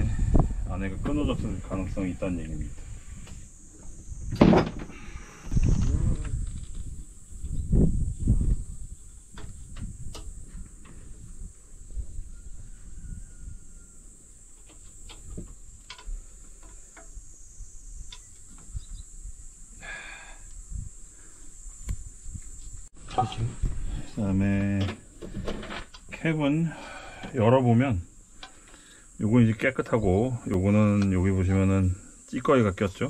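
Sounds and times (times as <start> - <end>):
knocks and rustles: 14.5 - 17.1, 23.0 - 23.8.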